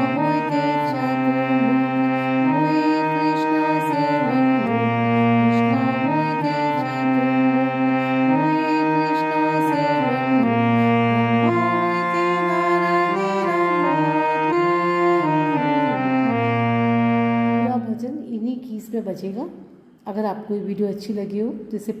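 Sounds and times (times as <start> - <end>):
harmonium melody: 0.0 - 18.1.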